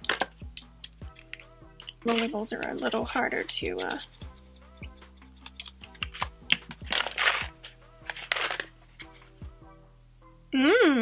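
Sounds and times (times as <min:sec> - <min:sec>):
soft background music: 0:00.0 - 0:11.0
small box clicks and rustles: 0:01.2 - 0:03.0, 0:05.4 - 0:08.7.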